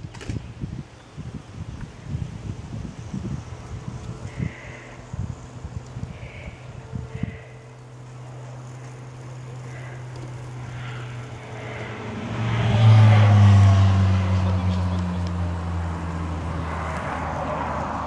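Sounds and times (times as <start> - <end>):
vehicle engine humming: 0.0 - 18.0.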